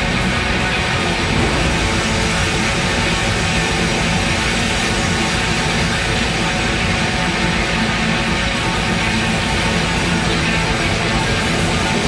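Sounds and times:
distorted electric guitar: 0:00.0 - 0:12.0
hard rock band playing: 0:00.0 - 0:12.0.

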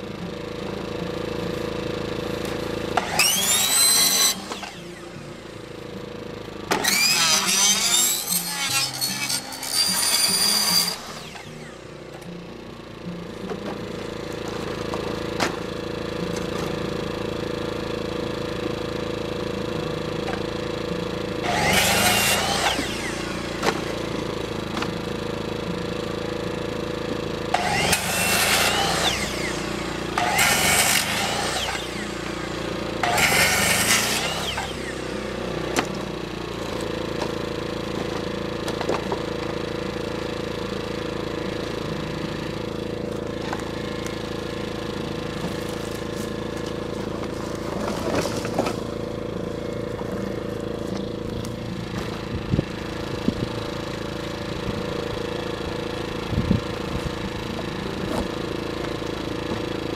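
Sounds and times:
circular saw cutting wood: 0:00.0 - 0:59.9
portable generator running: 0:00.0 - 0:59.9.

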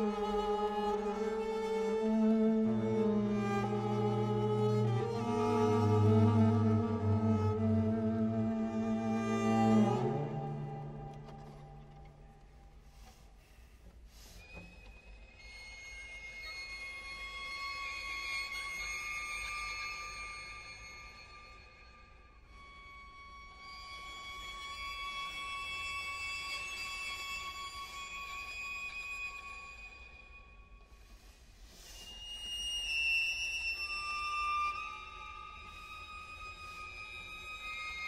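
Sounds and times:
string trio holding high notes: 0:00.0 - 0:12.1.

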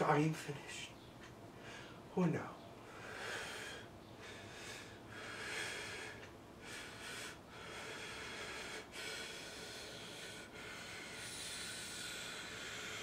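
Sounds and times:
man breathing deeply: 0:01.5 - 0:02.1, 0:02.8 - 0:13.0.

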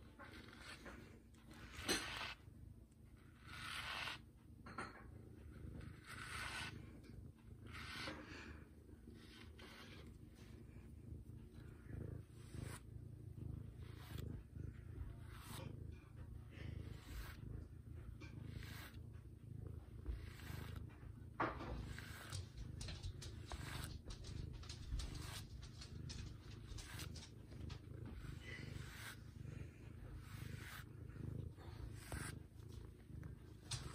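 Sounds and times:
brush strokes on fur: 0:00.0 - 0:04.5, 0:05.3 - 0:33.9
cat purring: 0:00.0 - 0:33.9.

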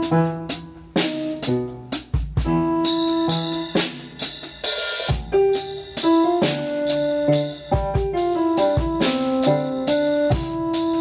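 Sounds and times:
electronic piano chords: 0:00.0 - 0:11.0
kick drum and snare: 0:05.1 - 0:11.0.

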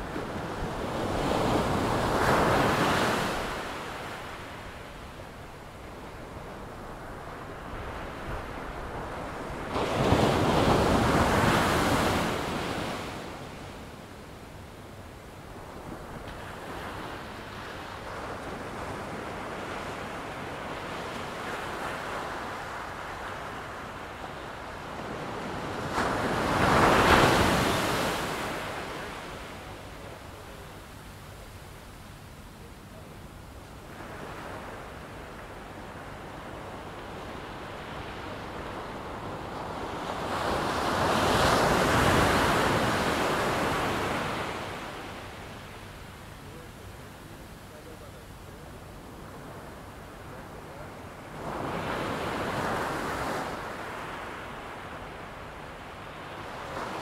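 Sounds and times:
ocean waves breaking: 0:24.9 - 0:29.7.

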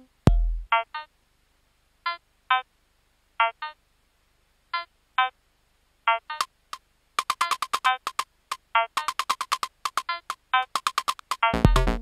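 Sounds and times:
bleeping synthesizer notes: 0:11.6 - 0:12.0.

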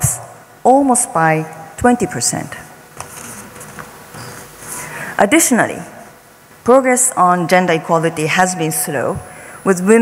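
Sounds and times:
faint steady hiss: 0:00.0 - 0:10.0
person breathing in: 0:04.2 - 0:05.2.

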